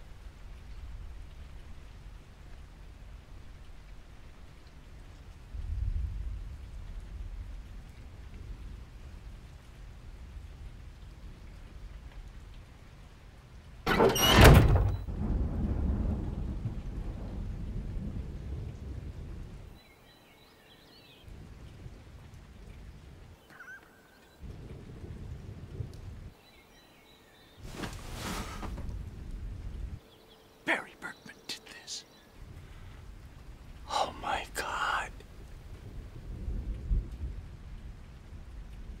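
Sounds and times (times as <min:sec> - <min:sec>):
rain: 0:00.0 - 0:39.0
thunderclap with rolling rumble: 0:05.4 - 0:12.4, 0:14.8 - 0:19.7, 0:24.4 - 0:26.4, 0:35.3 - 0:39.0
breathy whisper-like vocal: 0:30.7 - 0:33.0, 0:33.8 - 0:35.2.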